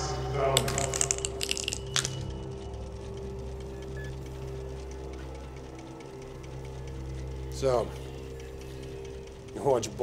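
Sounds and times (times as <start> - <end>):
steady low hum: 0.0 - 10.0
balls ticking on glass pegs: 0.5 - 3.0.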